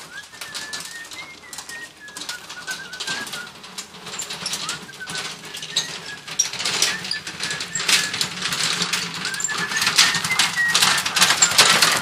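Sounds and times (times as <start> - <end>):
wheelbarrow rolling over gravel: 0.0 - 12.0.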